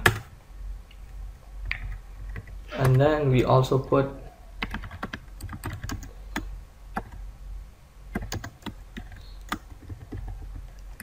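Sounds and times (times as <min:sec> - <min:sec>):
computer keyboard typing: 0:04.6 - 0:07.2, 0:08.1 - 0:11.0.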